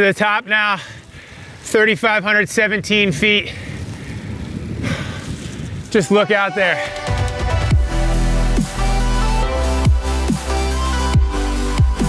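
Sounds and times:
cyclist exhaling hard: 0.8s - 1.6s, 3.4s - 5.9s
wind rumble on microphone: 2.5s - 6.2s.

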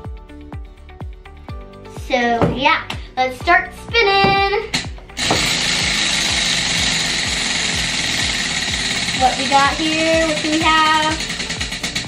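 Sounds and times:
background music with a beat: 0.0s - 12.0s
prize wheel flapper clattering: 4.8s - 12.0s.

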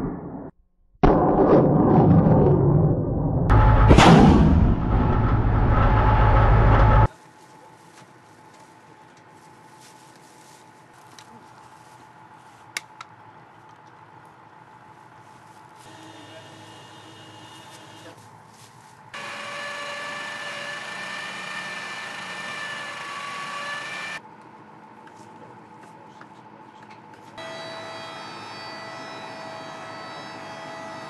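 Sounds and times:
faint whine: 2.4s - 12.7s
machinery whining: 3.5s - 7.1s, 19.2s - 24.2s, 27.4s - 31.0s.

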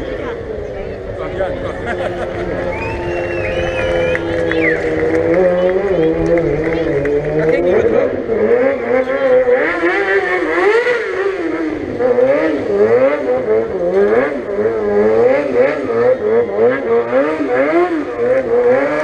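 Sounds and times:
racing car engine revving: 0.0s - 19.0s.

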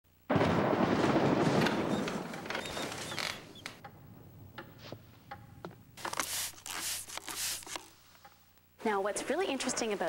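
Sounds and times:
short creaks and squeaks: 1.6s - 3.9s.

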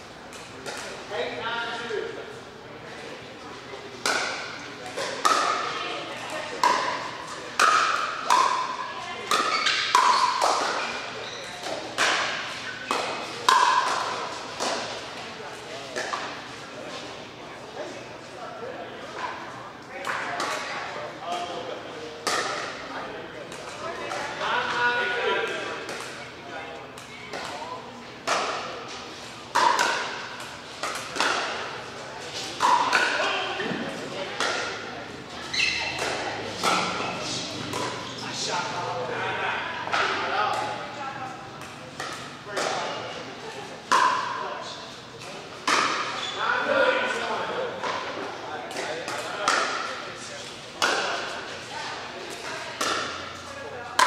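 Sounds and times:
paddles hitting plastic ball: 29.5s - 31.6s.

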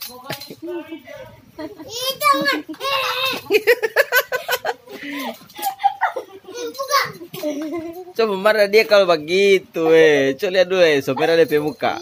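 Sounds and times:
young children talking excitedly: 1.6s - 3.9s, 5.1s - 8.1s.

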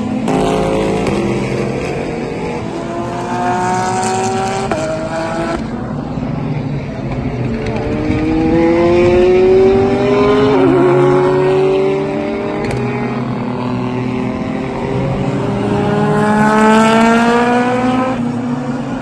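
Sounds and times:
race car engines accelerating: 0.0s - 19.0s.

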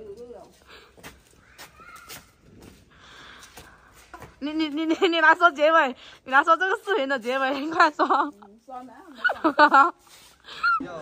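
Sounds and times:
faint clicks and scuffs: 0.0s - 4.8s.

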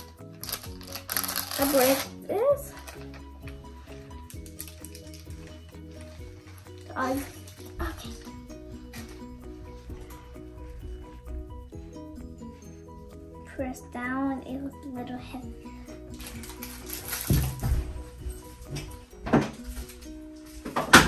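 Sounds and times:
simple melody music: 0.0s - 21.0s.

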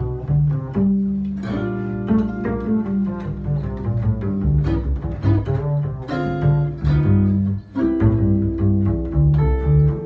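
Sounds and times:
pizzicato double bass: 0.0s - 10.0s.

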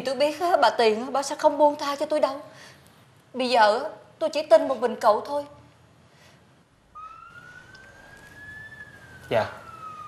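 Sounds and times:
gliding siren-like tone: 6.9s - 10.0s.

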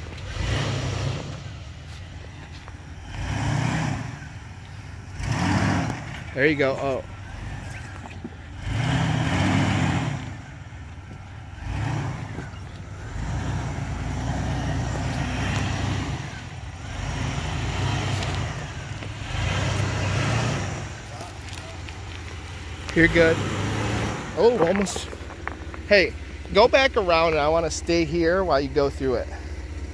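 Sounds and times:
engine crawling over rocks: 0.0s - 29.9s.

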